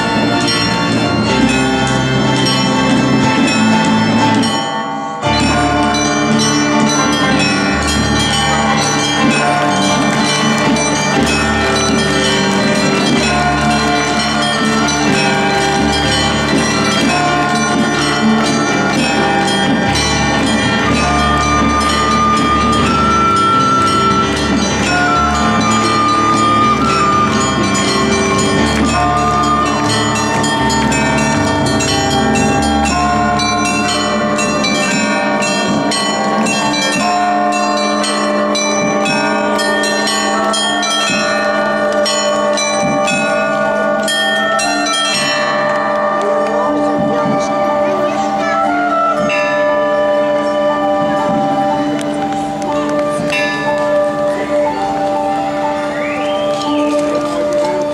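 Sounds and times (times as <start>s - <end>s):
plucked zithers playing folk tune: 0.0s - 57.9s.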